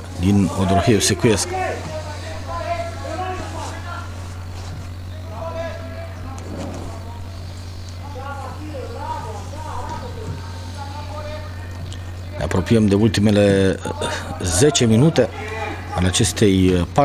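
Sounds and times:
distant players calling out: 0:00.0 - 0:12.5, 0:13.8 - 0:16.5
steady low hum: 0:00.0 - 0:17.0.

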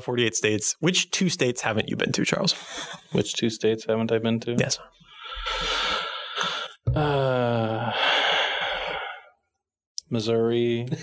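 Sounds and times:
man sighing: 0:05.2 - 0:09.3.

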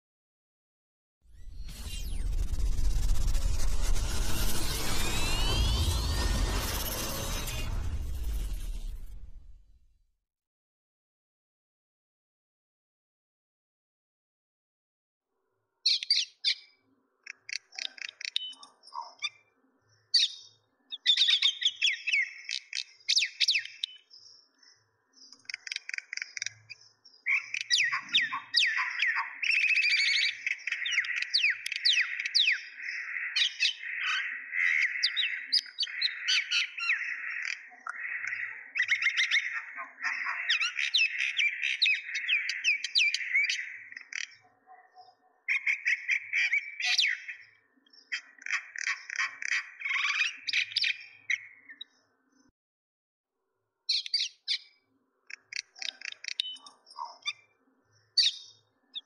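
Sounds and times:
small birds chirping: 0:15.9 - 0:52.5, 0:53.9 - 0:59.0.

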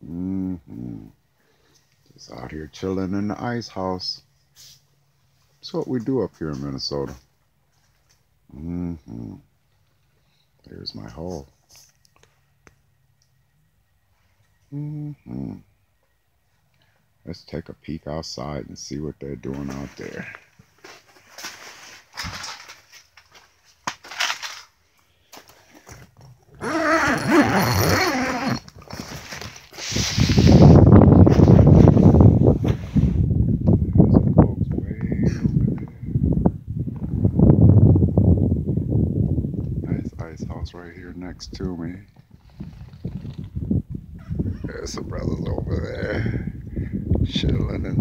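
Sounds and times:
fabric tent rustling: 0:19.6 - 0:24.7, 0:26.6 - 0:33.3
wind buffeting microphone: 0:29.9 - 0:48.0.

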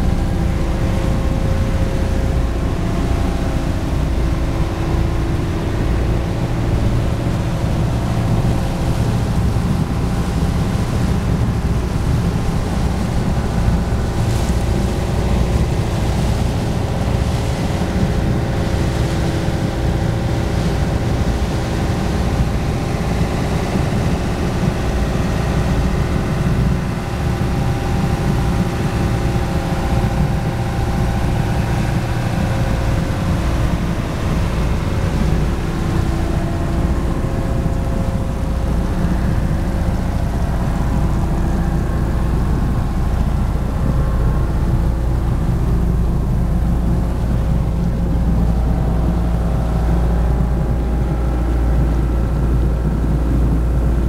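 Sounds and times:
boat engine running: 0:00.0 - 0:54.0
water rushing along hull: 0:00.0 - 0:54.0.

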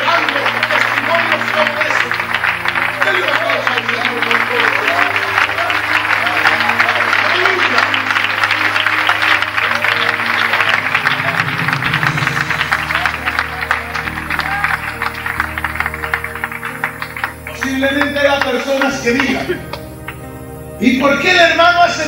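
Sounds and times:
congregation clapping: 0:00.0 - 0:22.0
held low instrumental notes: 0:00.0 - 0:22.0.

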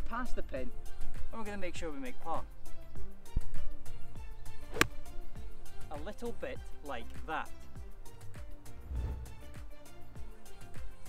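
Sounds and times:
background music: 0:00.0 - 0:11.0
golf club striking ball: 0:04.5 - 0:05.3.

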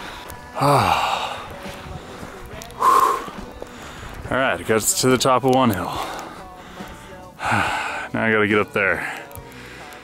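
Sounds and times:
man exhaling heavily: 0:02.8 - 0:03.4.

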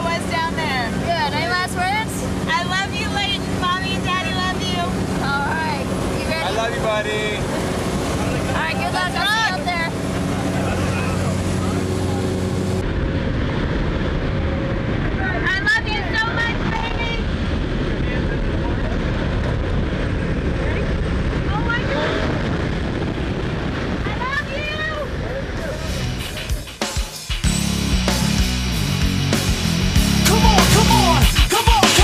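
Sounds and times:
plane engine droning: 0:00.0 - 0:26.8
wind rushing on microphone: 0:00.0 - 0:26.8
people yelling: 0:30.2 - 0:32.0
person shouting: 0:30.2 - 0:32.0.

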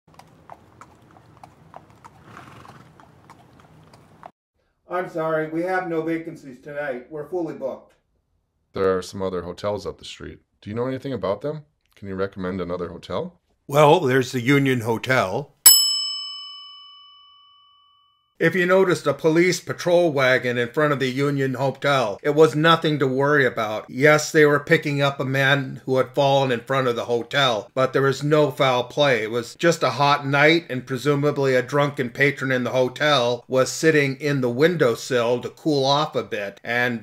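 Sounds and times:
horse hooves clip-clopping: 0:00.1 - 0:04.3
desk bell ding: 0:15.7 - 0:18.3.

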